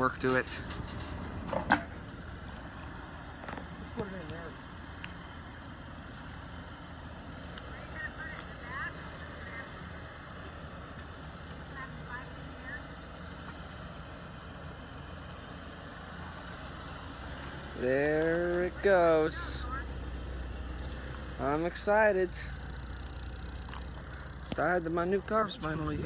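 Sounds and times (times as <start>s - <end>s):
vehicle engine idling: 0.0s - 26.0s.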